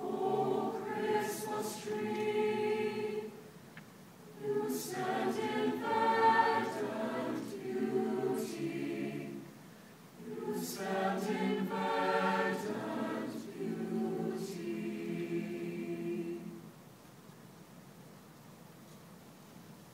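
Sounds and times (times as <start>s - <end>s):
mixed choir singing: 0.0s - 3.5s, 4.3s - 9.6s, 10.2s - 16.7s.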